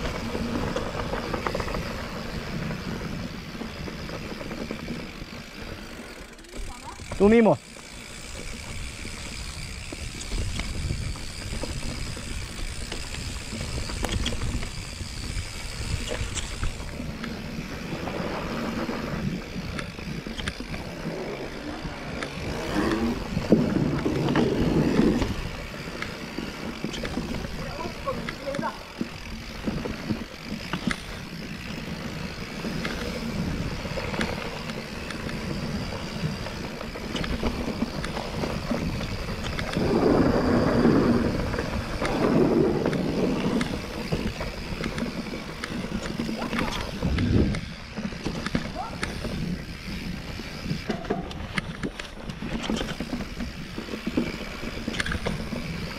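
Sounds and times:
bike rattling over bumps: 0:00.0 - 0:55.9
bike tyres rolling over dirt: 0:00.0 - 0:55.9.

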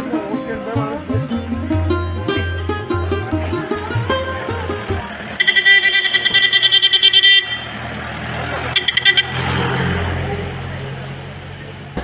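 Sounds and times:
crowd chatter: 0:00.0 - 0:12.0
traffic noise: 0:00.0 - 0:12.0
vehicle horn warbling: 0:05.4 - 0:07.9, 0:08.7 - 0:09.7.

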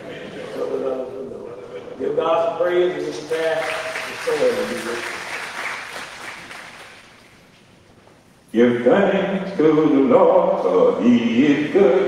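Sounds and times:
congregation applause: 0:03.0 - 0:07.4.

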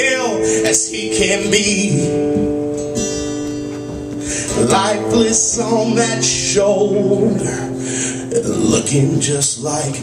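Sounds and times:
acoustic guitar strumming: 0:00.0 - 0:10.0.

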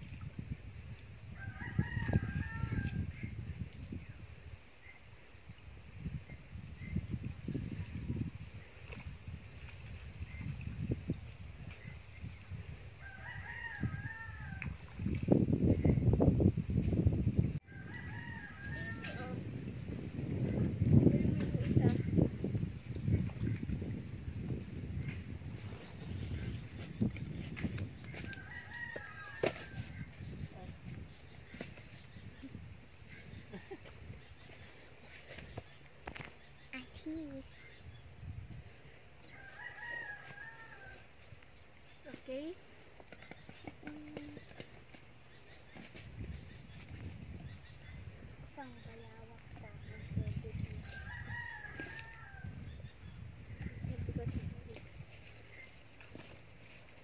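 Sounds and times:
rooster crowing: 0:01.4 - 0:03.0, 0:13.0 - 0:14.7, 0:17.7 - 0:19.3, 0:28.3 - 0:30.0, 0:39.3 - 0:41.0, 0:50.9 - 0:52.6.

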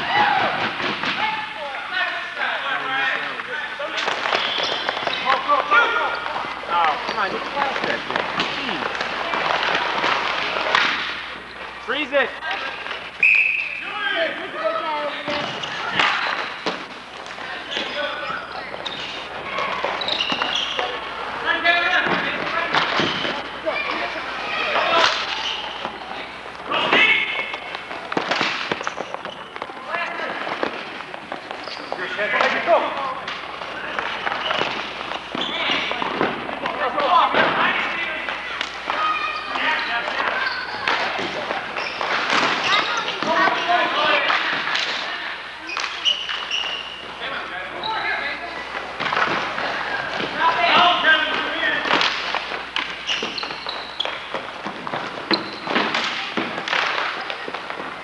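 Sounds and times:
hockey sticks knocking ball: 0:03.4 - 0:11.8, 0:15.3 - 0:21.1, 0:21.8 - 0:45.0, 0:48.6 - 0:58.0.

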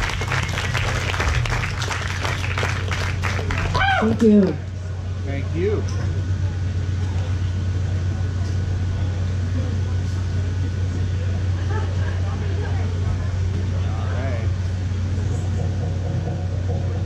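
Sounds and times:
faint crowd voices: 0:00.0 - 0:17.0.

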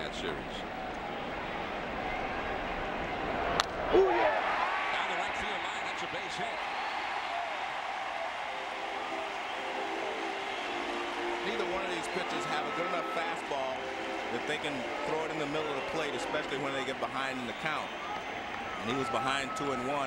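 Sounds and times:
crowd cheering and clapping: 0:00.6 - 0:20.0.

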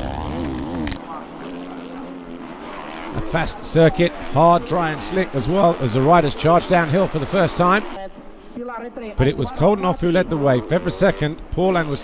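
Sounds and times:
motocross bike engine revving: 0:00.0 - 0:08.0, 0:09.8 - 0:12.0
distant motorbike engines droning: 0:00.0 - 0:12.0.

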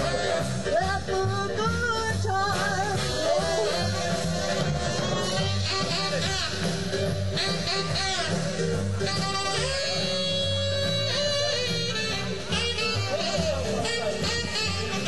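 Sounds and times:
trombone: 0:00.0 - 0:01.2, 0:02.5 - 0:15.0
saxophone lead: 0:00.0 - 0:15.0
swing band playing: 0:00.0 - 0:15.0.

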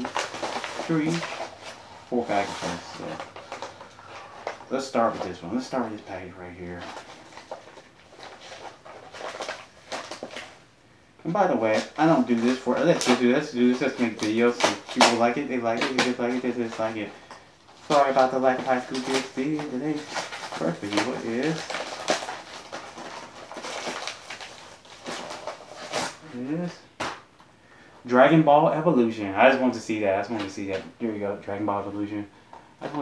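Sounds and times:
paper envelope tearing: 0:00.0 - 0:03.8, 0:11.6 - 0:17.0, 0:17.8 - 0:26.4.

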